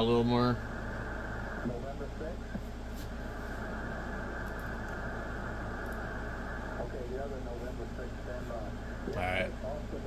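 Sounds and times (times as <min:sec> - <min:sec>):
faint distant radio voice: 0:00.0 - 0:04.4, 0:05.0 - 0:10.0
low steady hum: 0:00.0 - 0:10.0
radio static: 0:00.0 - 0:10.0.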